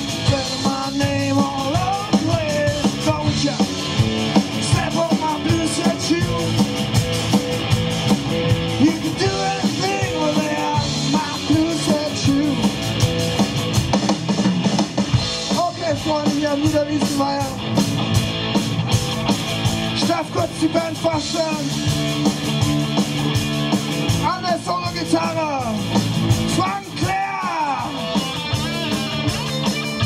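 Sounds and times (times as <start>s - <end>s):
hard rock band playing: 0.0s - 30.0s.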